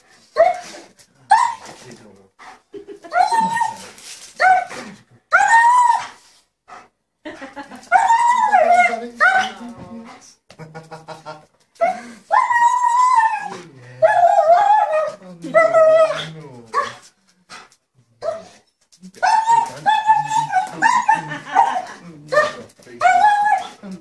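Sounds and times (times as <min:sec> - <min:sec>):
dog whining and crying: 0:00.4 - 0:01.8, 0:03.1 - 0:06.4, 0:07.9 - 0:09.7, 0:11.8 - 0:17.0, 0:19.2 - 0:24.0.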